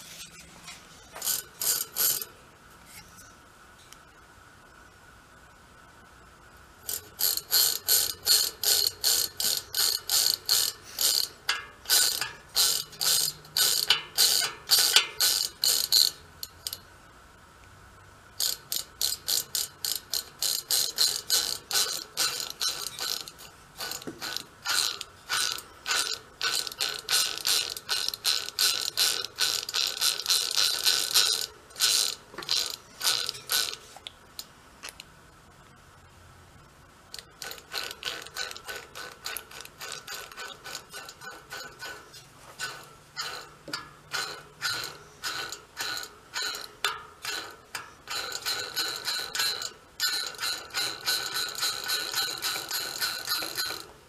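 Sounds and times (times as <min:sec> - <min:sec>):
ratcheting clicks of wheel hub: 0:01.1 - 0:02.4, 0:06.8 - 0:16.9, 0:18.4 - 0:35.1, 0:37.1 - 0:54.0.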